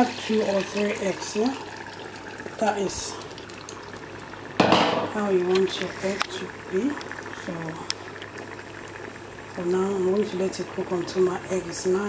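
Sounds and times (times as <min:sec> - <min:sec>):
stew bubbling in a saucepan: 0:00.0 - 0:12.0.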